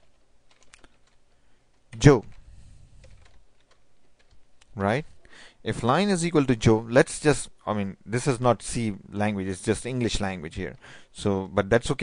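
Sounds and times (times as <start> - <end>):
keyboard keystrokes: 0.0 - 1.2.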